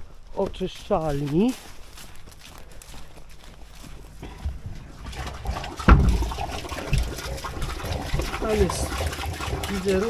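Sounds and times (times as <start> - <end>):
footsteps through ground cover: 0.0 - 5.3.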